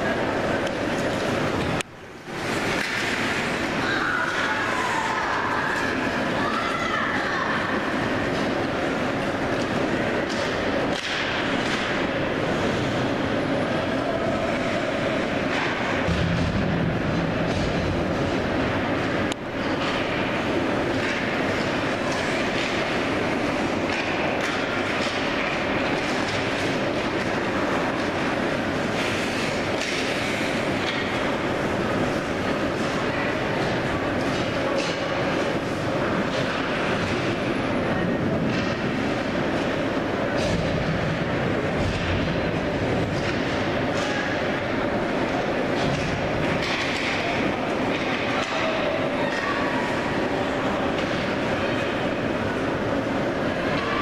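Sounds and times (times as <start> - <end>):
spectators chattering: 0.0 - 54.0
hockey sticks and puck clacking: 0.6 - 6.6, 9.2 - 13.0, 15.5 - 16.7, 17.4 - 28.3, 29.0 - 31.4, 33.6 - 37.4, 41.8 - 44.6, 45.8 - 49.6, 50.7 - 52.0.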